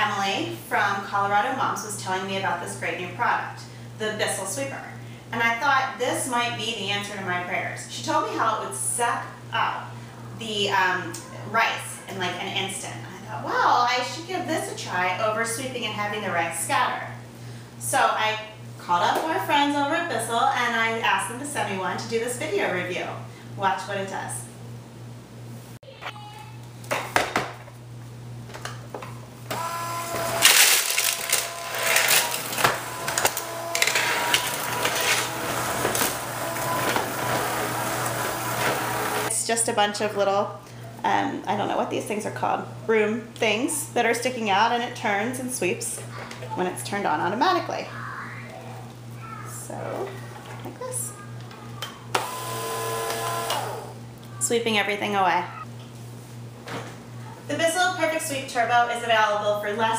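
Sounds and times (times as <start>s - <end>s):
cordless sweeper whine: 29.5s - 39.3s.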